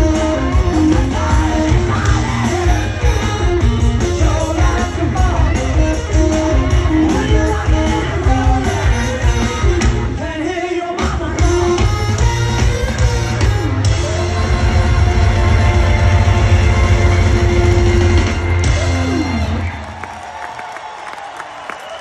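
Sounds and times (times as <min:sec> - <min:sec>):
live rock band with singing: 0:00.0 - 0:20.0
crowd cheering and whooping: 0:13.9 - 0:22.0.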